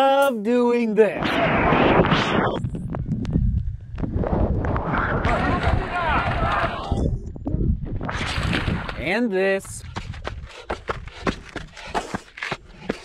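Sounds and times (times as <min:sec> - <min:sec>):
wind buffeting microphone: 0:01.3 - 0:12.0
people shouting: 0:05.3 - 0:07.0.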